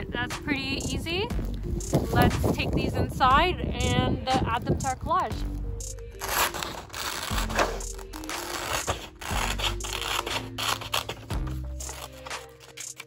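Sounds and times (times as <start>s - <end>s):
background music: 0.0s - 13.0s
scissors snipping paper: 6.2s - 13.0s.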